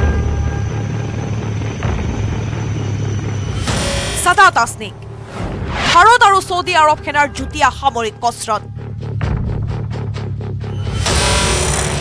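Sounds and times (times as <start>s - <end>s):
helicopter rotor rumble: 0.0s - 11.1s.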